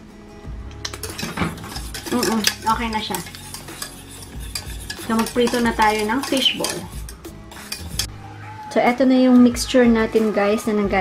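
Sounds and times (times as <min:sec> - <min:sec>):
background music: 0:00.0 - 0:11.0
whisk scraping a metal saucepan: 0:00.8 - 0:08.1.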